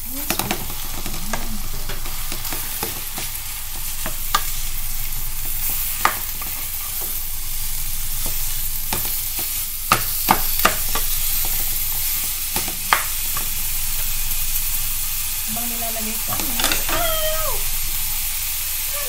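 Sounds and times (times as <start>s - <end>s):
meat sizzling in a pan: 0.0s - 19.0s.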